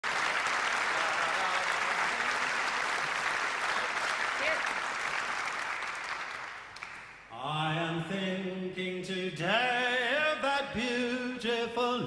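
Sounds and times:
audience applauding: 0.0s - 7.3s.

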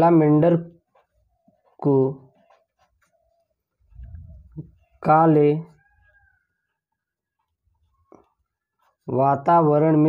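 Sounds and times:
marker pen scratching on paper: 0.8s - 3.5s.

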